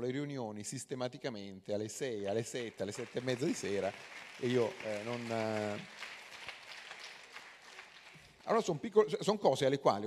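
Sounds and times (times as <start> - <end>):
audience clapping: 2.3 - 8.8.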